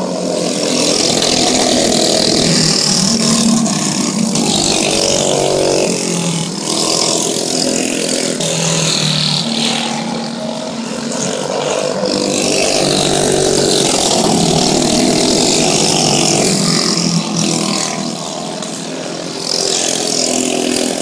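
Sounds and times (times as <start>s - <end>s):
go-kart engines racing: 0.0s - 21.0s.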